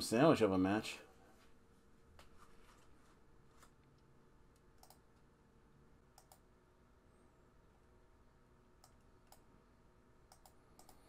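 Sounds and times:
faint short clicks: 10.3 - 11.0.

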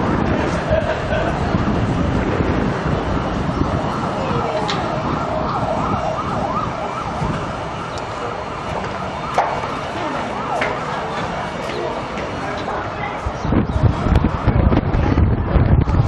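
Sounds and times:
street noise: 0.0 - 16.0
siren wailing: 2.0 - 13.3.

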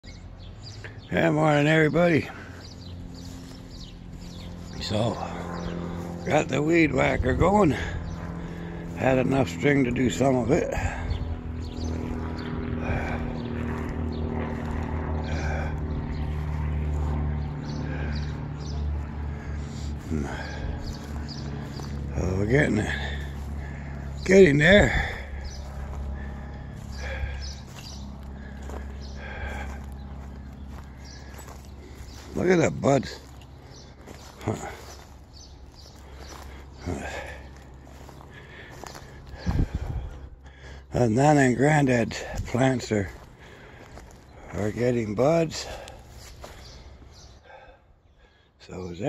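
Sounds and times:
faint outdoor background: 0.0 - 49.0
string trimmer running: 0.3 - 44.6.

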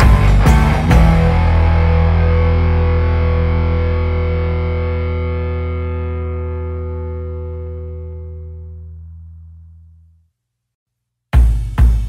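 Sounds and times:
distorted electric guitar chord: 0.0 - 9.8.

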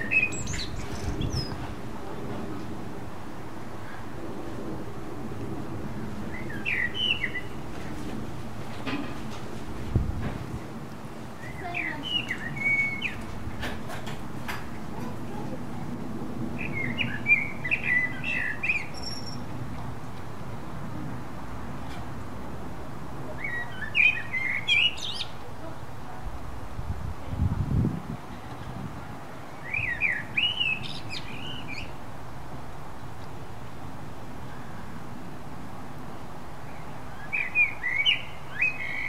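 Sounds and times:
blackbird singing: 0.0 - 1.6, 6.3 - 7.6, 11.4 - 13.3, 16.6 - 19.5, 23.4 - 25.4, 29.6 - 32.0, 36.7 - 39.0.

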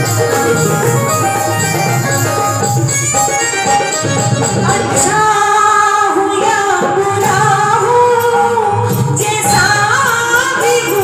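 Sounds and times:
woman singing into a microphone: 4.4 - 11.0.

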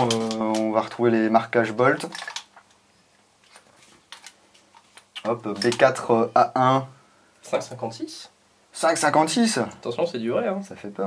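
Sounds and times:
rustles of handling: 3.4 - 6.1.

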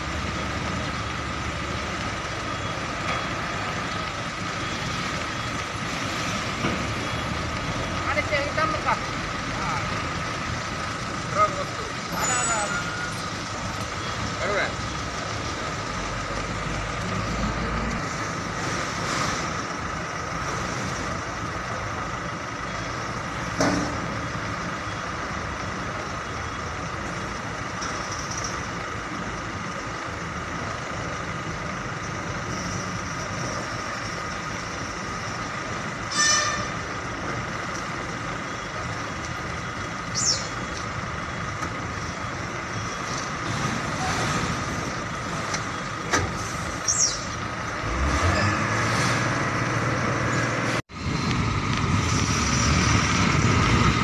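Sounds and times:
diesel truck engines running: 0.0 - 54.0.

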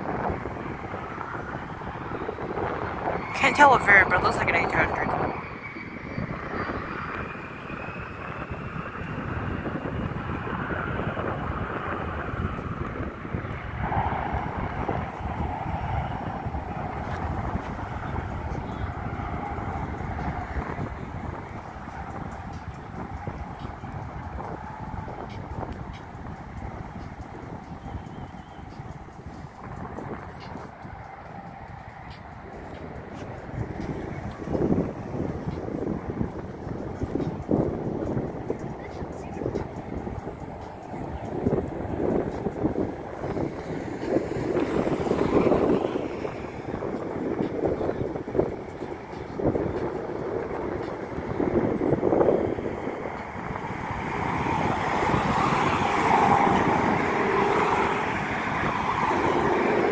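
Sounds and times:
jet engines whining: 0.0 - 59.9
road traffic: 0.0 - 59.9.

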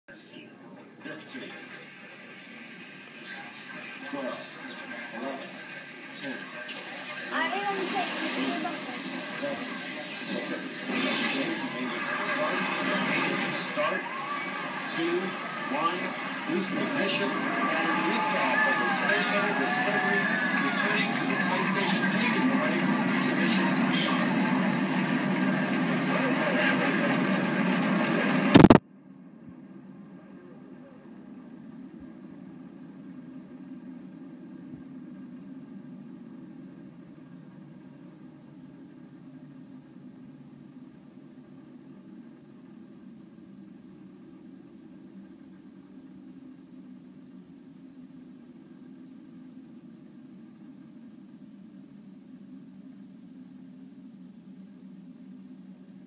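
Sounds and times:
voice over broadcast: 0.1 - 24.8, 25.5 - 27.5
faint steady hum: 0.1 - 26.7, 28.1 - 56.0.

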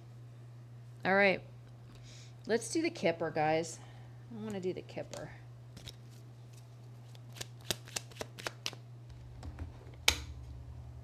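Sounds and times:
cards being shuffled: 5.1 - 8.8.

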